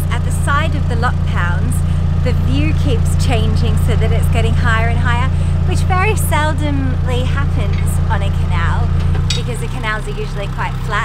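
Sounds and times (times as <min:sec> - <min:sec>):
boat engine humming: 0:00.0 - 0:11.0
woman talking: 0:00.0 - 0:11.0.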